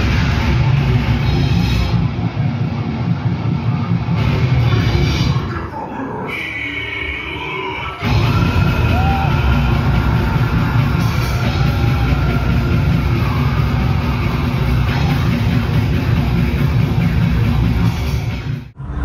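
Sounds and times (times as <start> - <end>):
metal band playing live: 0.0 - 5.6, 8.0 - 18.7.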